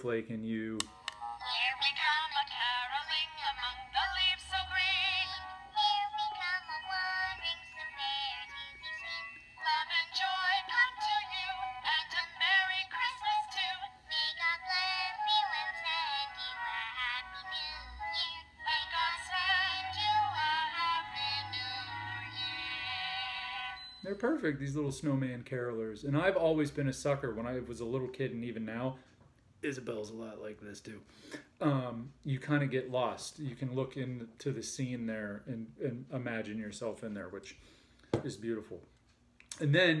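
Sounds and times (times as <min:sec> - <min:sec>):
thin voices singing carol: 0:01.4 - 0:23.8.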